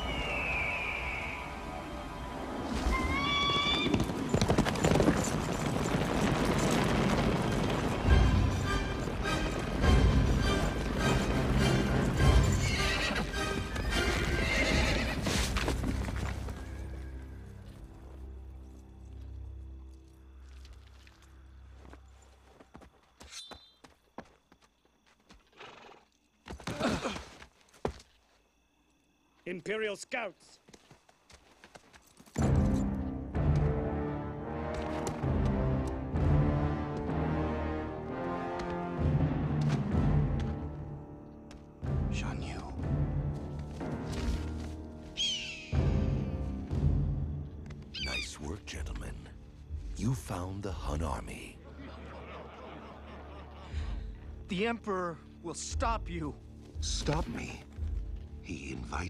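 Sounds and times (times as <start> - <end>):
falcon screech: 2.7 - 4.1, 45.2 - 45.7, 47.9 - 48.3
horses' hooves clattering: 3.3 - 17.8.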